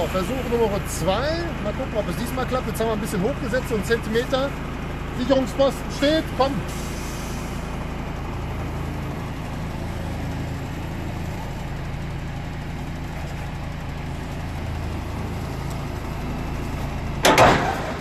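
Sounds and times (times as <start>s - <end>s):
diesel truck engine running: 0.0s - 18.0s
loud boom of trailer coupling: 17.2s - 18.0s.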